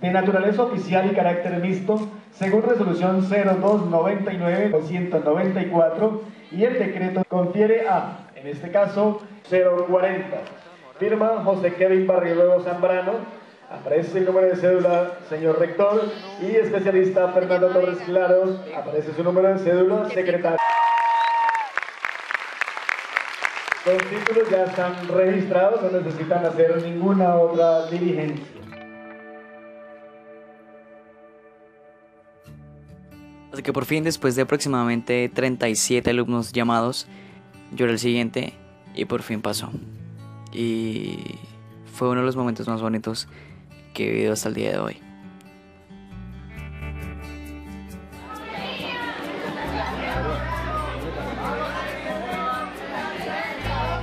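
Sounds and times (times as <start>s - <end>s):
many voices chattering: 12.2s - 20.6s, 48.2s - 54.0s
audience clapping: 20.6s - 27.0s
background music: 23.8s - 54.0s.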